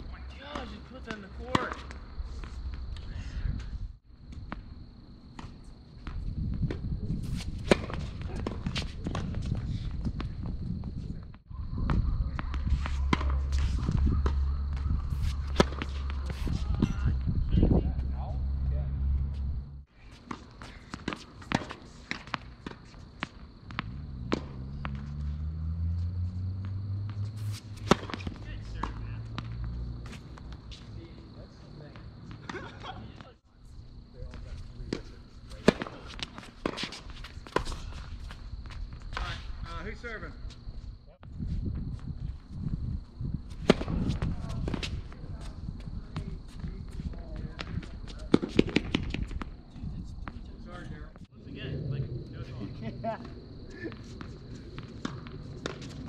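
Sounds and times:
racket striking tennis ball: 0:06.7 - 0:09.4, 0:11.9 - 0:17.0, 0:20.2 - 0:25.3, 0:26.6 - 0:30.3, 0:35.6 - 0:37.8, 0:43.6 - 0:45.0.

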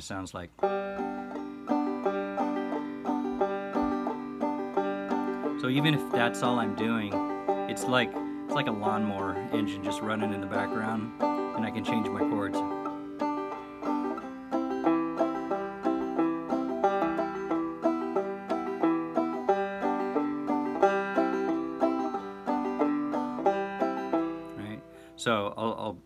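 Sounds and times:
banjo clawhammer strumming: 0:00.0 - 0:25.9.

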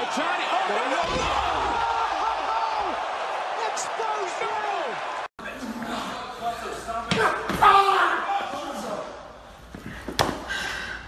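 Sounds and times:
crowd shouting: 0:00.0 - 0:05.3.

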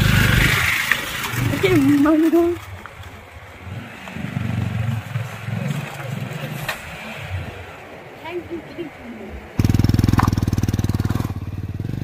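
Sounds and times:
motorcycle engine at low revs: 0:00.0 - 0:02.3, 0:09.6 - 0:12.0.

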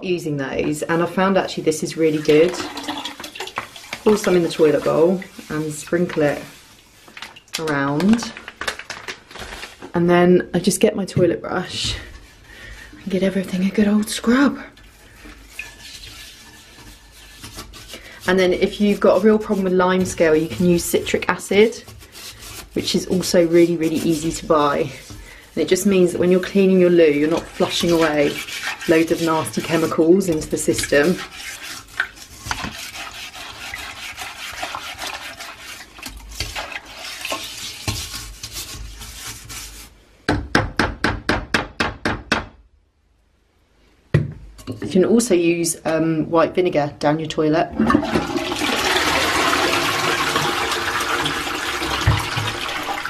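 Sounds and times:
toilet brush scrubbing bowl: 0:00.0 - 0:08.4, 0:10.6 - 0:40.0, 0:47.8 - 0:53.0.

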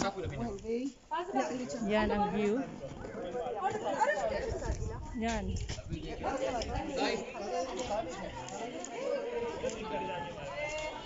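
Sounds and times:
people talking: 0:01.4 - 0:11.0.

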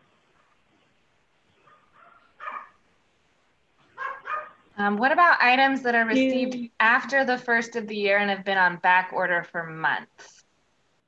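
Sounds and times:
dog yipping: 0:01.6 - 0:02.8, 0:03.9 - 0:04.6.

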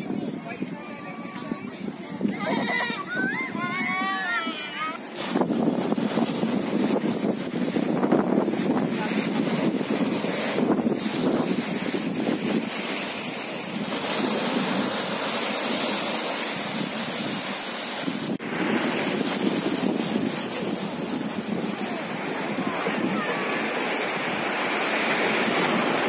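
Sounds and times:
sea waves breaking on shore: 0:00.0 - 0:26.0
wind buffeting microphone: 0:00.0 - 0:26.0.

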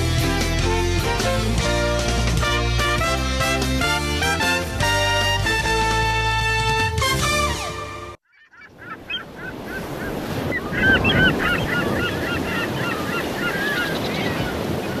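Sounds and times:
theme music: 0:00.0 - 0:08.2
gull calls: 0:08.2 - 0:15.0
ocean surf: 0:09.2 - 0:15.0.

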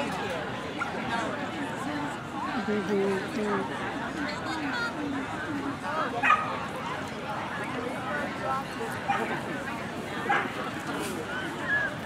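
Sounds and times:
people talking: 0:00.0 - 0:12.0
dog barking: 0:06.2 - 0:06.5, 0:10.3 - 0:10.5.

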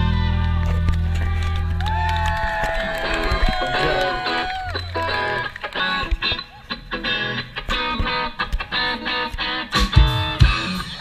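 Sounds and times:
bass notes: 0:00.0 - 0:02.6
live band music: 0:04.7 - 0:11.0.

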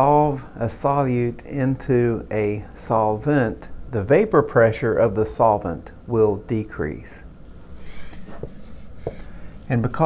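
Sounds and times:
marker writing on whiteboard: 0:08.0 - 0:10.0.

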